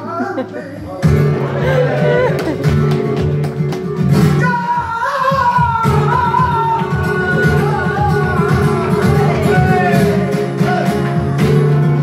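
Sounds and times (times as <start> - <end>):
flamenco guitar strumming: 1.0 - 12.0
man singing flamenco: 4.2 - 12.0.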